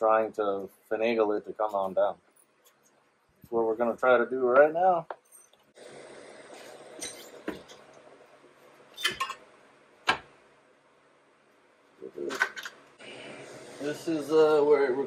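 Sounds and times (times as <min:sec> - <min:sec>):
sharp metal clinks and knocks: 0:05.1 - 0:05.7
faint hiss: 0:05.7 - 0:15.0.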